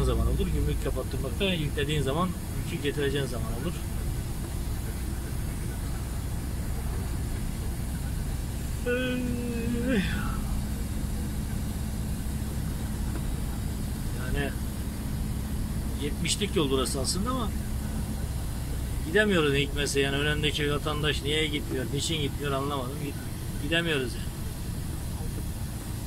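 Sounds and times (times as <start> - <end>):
lorry diesel engine drone: 0.0 - 26.0.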